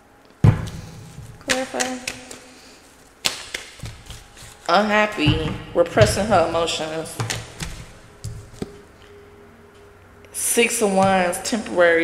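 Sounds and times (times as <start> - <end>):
cards being shuffled: 0.7 - 4.8, 7.2 - 8.8.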